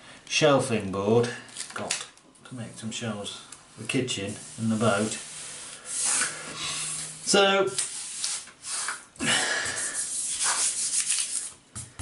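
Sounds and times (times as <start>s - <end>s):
hands rubbing paper swish: 4.3s - 9.1s, 9.7s - 11.5s.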